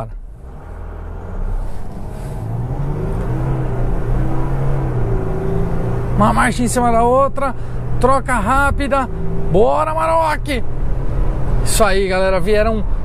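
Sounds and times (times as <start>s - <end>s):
diesel engine accelerating: 0.0s - 13.0s.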